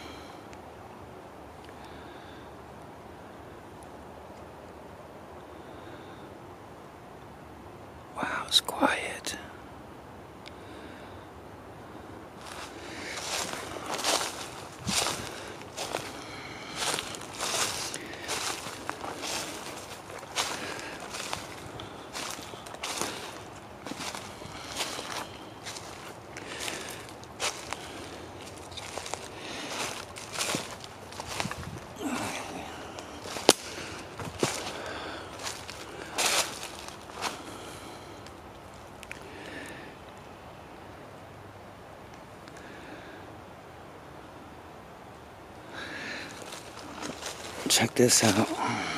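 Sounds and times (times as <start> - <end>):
footsteps through dry leaves: 12.4 - 39.3, 45.8 - 48.9.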